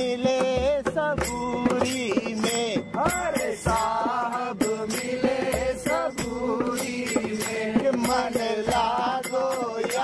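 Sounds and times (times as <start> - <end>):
sharp percussion strikes: 0.0 - 10.0.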